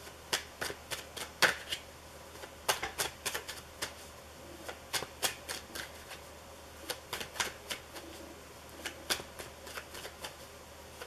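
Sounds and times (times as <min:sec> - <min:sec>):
cards being shuffled: 0:02.4 - 0:06.2, 0:06.8 - 0:10.4.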